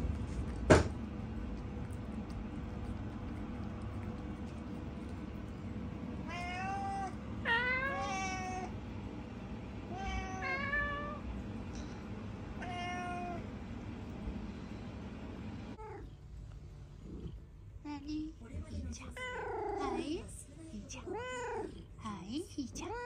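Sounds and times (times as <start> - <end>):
cats meowing: 6.1 - 8.8, 9.8 - 11.2, 12.6 - 13.4.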